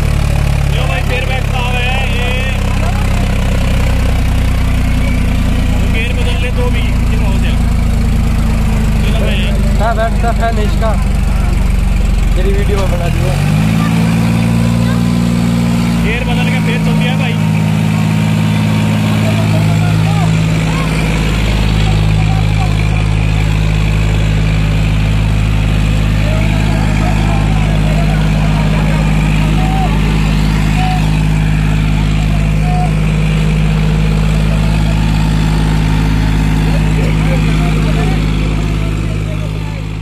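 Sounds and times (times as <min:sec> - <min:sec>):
crowd voices: 0:00.0 - 0:40.0
tractor diesel engine running: 0:00.0 - 0:40.0.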